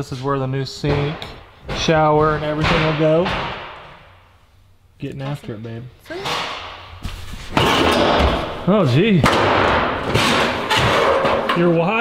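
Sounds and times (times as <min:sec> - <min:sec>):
sheet metal clattering and scraping: 0:05.3 - 0:08.6, 0:09.2 - 0:12.0.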